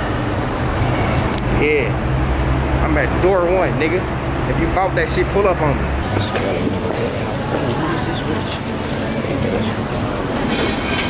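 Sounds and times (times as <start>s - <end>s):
vehicle rumble: 0.0s - 11.0s
high squeal: 6.0s - 7.0s.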